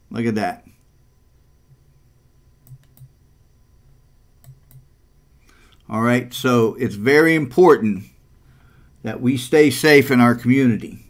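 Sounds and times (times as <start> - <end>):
faint room hum: 0.0 - 11.0
computer mouse clicking: 2.6 - 3.1, 4.4 - 4.9.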